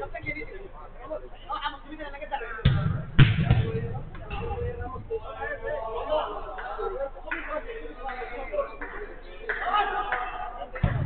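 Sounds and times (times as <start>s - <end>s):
football kick thuds: 2.6s - 4.8s.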